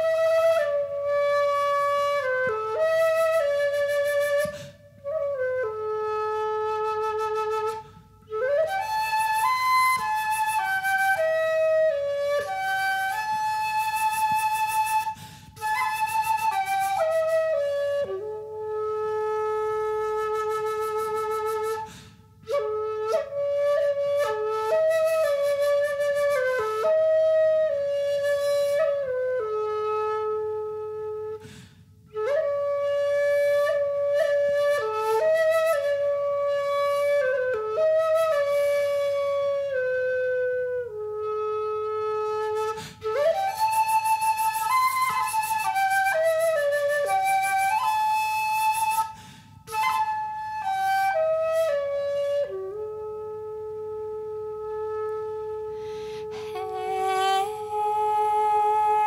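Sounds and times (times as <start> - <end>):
solo flute slow folk melody: 0.0 - 59.0.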